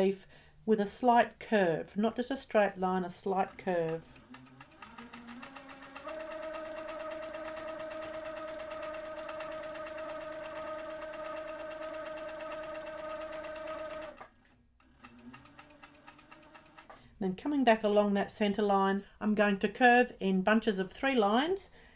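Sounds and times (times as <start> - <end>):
sewing machine stitching: 3.3 - 17.0.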